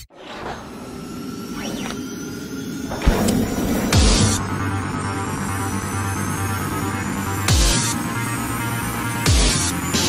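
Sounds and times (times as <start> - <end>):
low rumble: 2.8 - 6.4.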